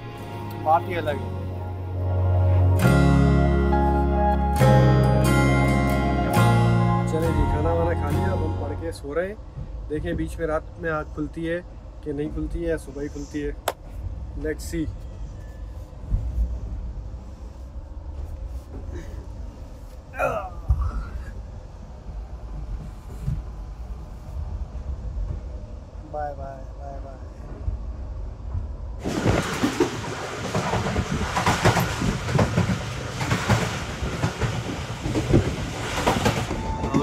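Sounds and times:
train rumbling: 0:00.0 - 0:37.0
train clacks and knocks: 0:09.5 - 0:10.6, 0:27.2 - 0:37.0
train wheels rumbling on rails: 0:20.7 - 0:37.0.

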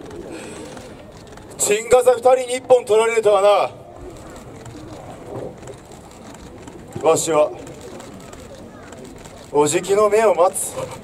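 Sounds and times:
dove cooing softly: 0:00.0 - 0:01.3
faint outdoor background: 0:00.0 - 0:11.0.

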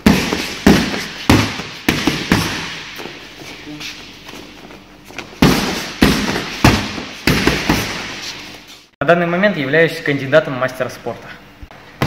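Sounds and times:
boxing gloves hitting focus mitts: 0:00.0 - 0:03.5, 0:04.1 - 0:08.5.

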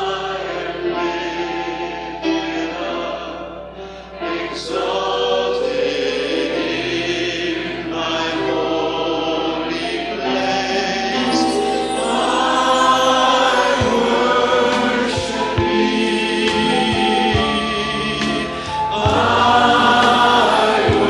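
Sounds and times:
choir singing worship song: 0:00.0 - 0:21.0.

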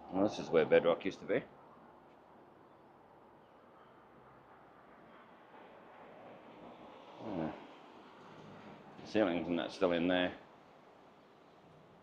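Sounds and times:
outdoor background hiss: 0:00.0 - 0:12.0
low voiced murmur: 0:07.2 - 0:07.7.

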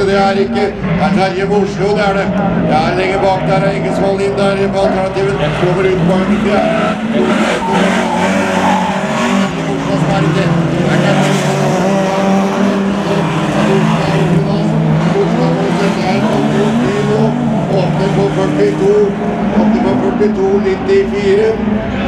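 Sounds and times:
race car engines revving: 0:00.0 - 0:22.0.

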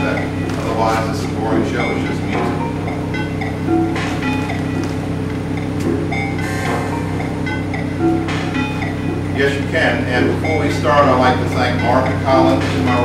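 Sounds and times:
low synthesizer drone: 0:00.0 - 0:13.0
short bleeping notes: 0:00.0 - 0:13.0.

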